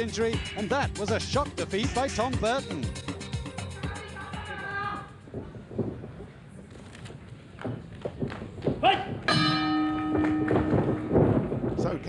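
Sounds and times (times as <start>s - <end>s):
ring bell struck: 9.3s - 11.2s.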